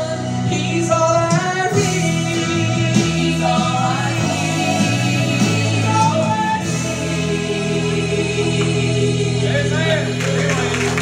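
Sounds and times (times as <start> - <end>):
women singing in harmony: 0.0 - 9.7.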